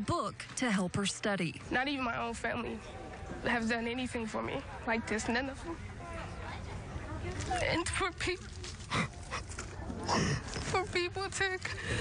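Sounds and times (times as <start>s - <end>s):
woman speaking: 0.0s - 2.8s.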